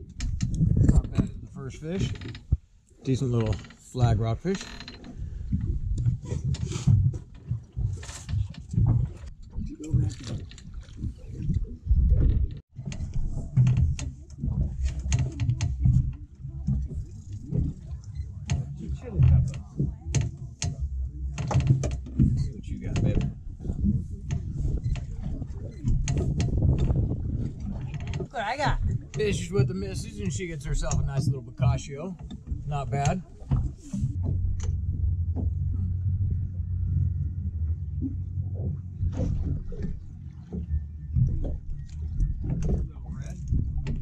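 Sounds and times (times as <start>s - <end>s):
uneven low rumble: 0.0s - 44.0s.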